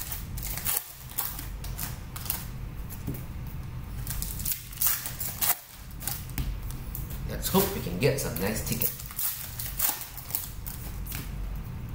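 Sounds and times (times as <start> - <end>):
foil wrapper crinkling: 4.0 - 6.4, 7.5 - 11.2.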